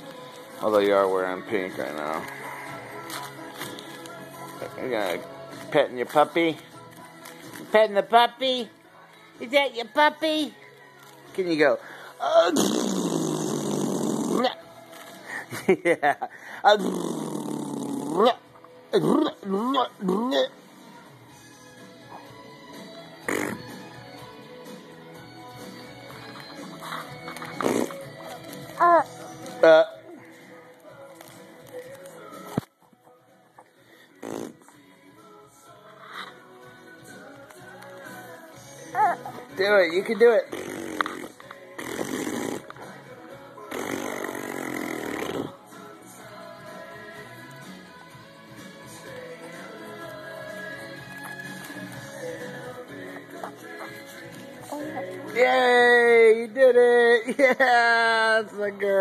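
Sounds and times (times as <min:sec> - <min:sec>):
quiet music: 0:00.0 - 0:59.0
baby making raspy noises: 0:12.3 - 0:14.6, 0:23.2 - 0:23.7, 0:26.6 - 0:29.2, 0:38.8 - 0:39.5, 0:40.4 - 0:42.7, 0:43.7 - 0:45.6, 0:53.3 - 0:55.3
baby cooing: 0:26.7 - 0:29.3, 0:38.8 - 0:39.5, 0:53.3 - 0:55.3.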